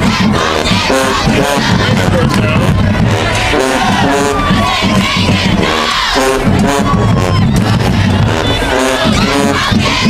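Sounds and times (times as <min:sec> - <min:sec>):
band members shouting together: 0:00.0 - 0:10.0
marching band playing: 0:00.0 - 0:10.0.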